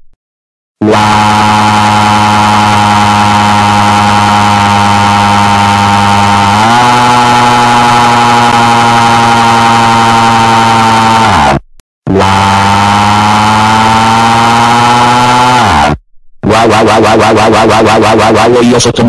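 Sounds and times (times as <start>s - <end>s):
harsh distorted buzzing: 0.8s - 19.0s.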